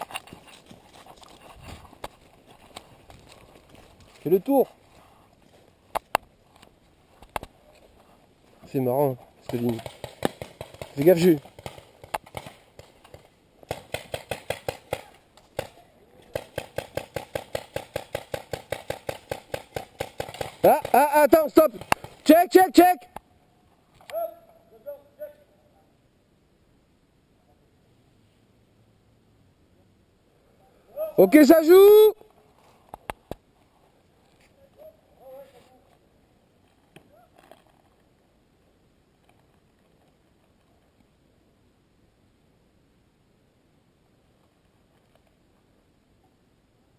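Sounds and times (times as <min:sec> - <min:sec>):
paintball markers firing: 0:09.5 - 0:21.1
distant voice calling out: 0:24.1 - 0:25.9, 0:30.7 - 0:32.2.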